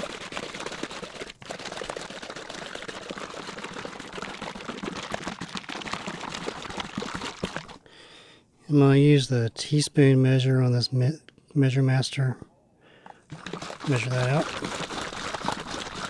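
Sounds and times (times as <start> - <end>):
liquid sloshing in shaken bottle: 0.0 - 7.8, 13.1 - 16.0.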